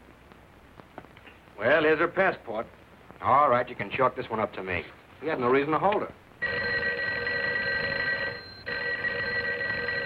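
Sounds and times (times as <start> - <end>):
telephone bell ringing: 6.4 - 10.0.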